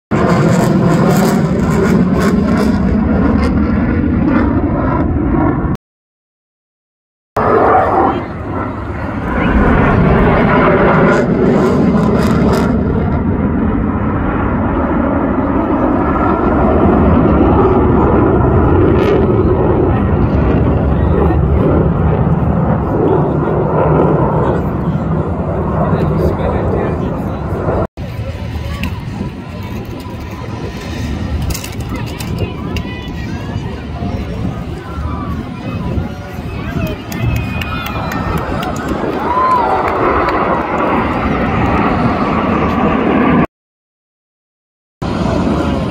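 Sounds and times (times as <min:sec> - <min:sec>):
jet engines roaring overhead: 0:00.1 - 0:05.8, 0:07.4 - 0:43.5, 0:45.0 - 0:45.9
outdoor voices: 0:07.4 - 0:43.5, 0:45.0 - 0:45.9.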